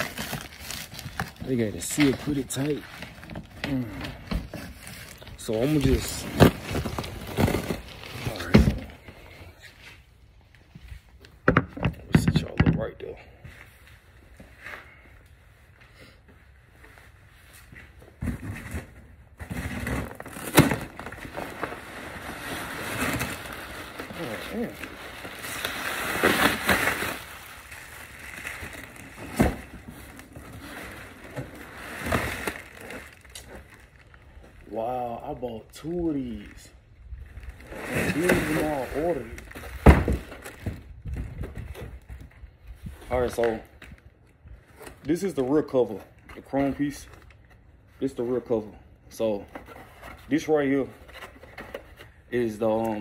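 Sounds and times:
cardboard box tearing: 19.4s - 33.3s, 37.7s - 40.5s.

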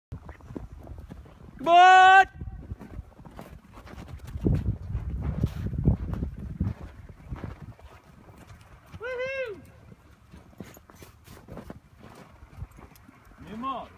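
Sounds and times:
horse hooves thudding in snow: 0.1s - 13.9s
person calling out: 9.0s - 9.6s.

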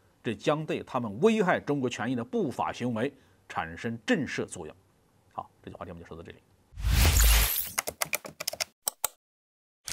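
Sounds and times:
keyboard typing clicks: 7.7s - 9.2s.

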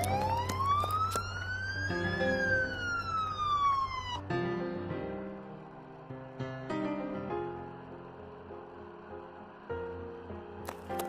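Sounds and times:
siren wail: 0.0s - 6.1s
background music: 0.0s - 11.0s.

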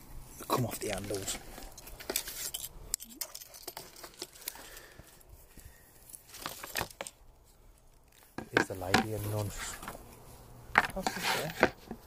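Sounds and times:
bag rustling and crinkling: 0.5s - 8.4s.

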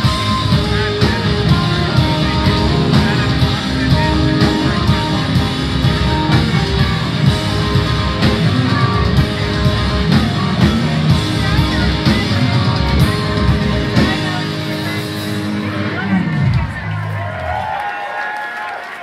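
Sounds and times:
driving drum beat: 0.0s - 17.2s
electric guitars: 0.0s - 17.6s
punk rock band playing live: 0.0s - 17.6s.

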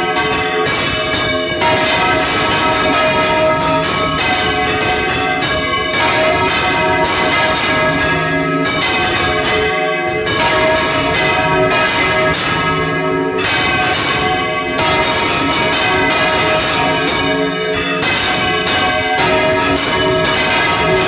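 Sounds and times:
church bells clanging: 0.0s - 21.0s.

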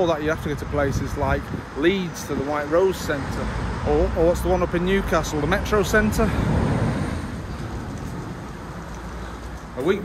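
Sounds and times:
passing vehicle rumble: 0.0s - 10.0s
road traffic hiss: 0.0s - 10.0s.

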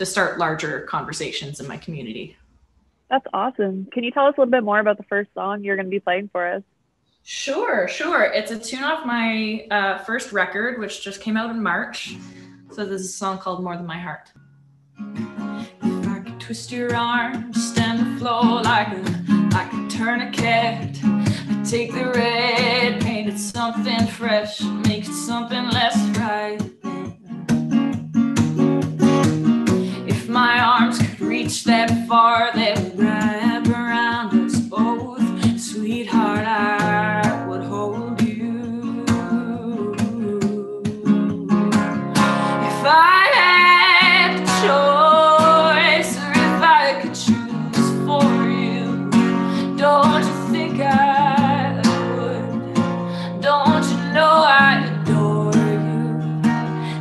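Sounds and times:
strummed acoustic guitar: 14.4s - 57.0s
woman singing: 15.8s - 26.7s, 29.9s - 57.0s.

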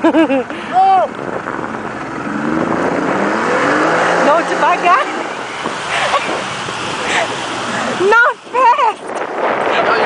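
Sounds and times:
outboard motor revving: 0.0s - 10.0s
water noise: 0.0s - 10.0s
wind: 0.0s - 10.0s.

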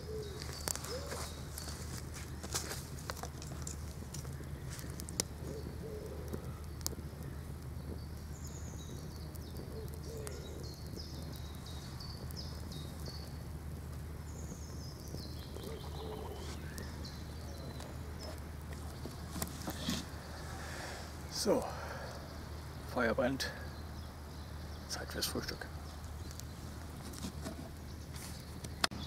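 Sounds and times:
fire crackling and popping: 0.0s - 29.0s
songbird singing: 0.0s - 29.0s.

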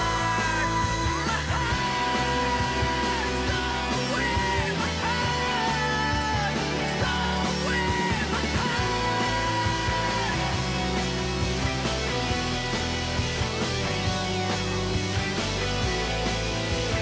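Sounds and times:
rock music with electric guitar: 0.0s - 17.0s.

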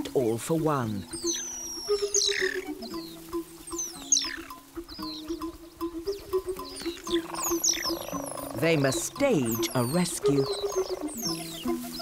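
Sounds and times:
documentary music with low notes: 0.0s - 12.0s
high falling chirping calls: 0.0s - 12.0s.

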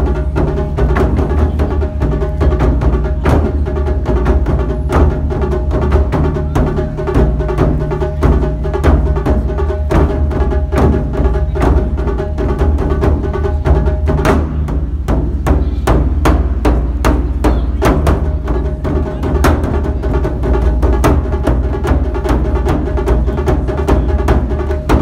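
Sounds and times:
deep drum tones: 0.0s - 25.0s.

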